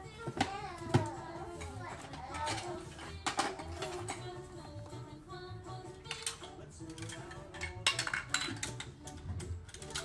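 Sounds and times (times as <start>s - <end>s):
plastic building blocks clicking: 6.1s - 10.0s.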